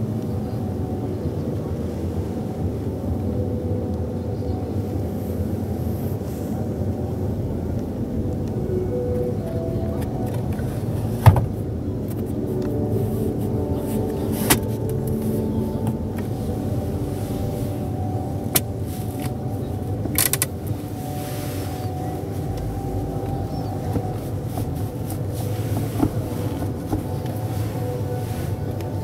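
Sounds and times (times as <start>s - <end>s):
handbrake ratchet clicks: 20.1s - 20.5s.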